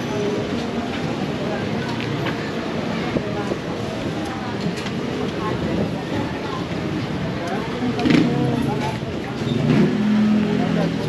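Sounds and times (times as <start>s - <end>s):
people chatting: 0.0s - 11.0s
traffic noise: 0.0s - 11.0s
vehicle engine: 6.7s - 11.0s.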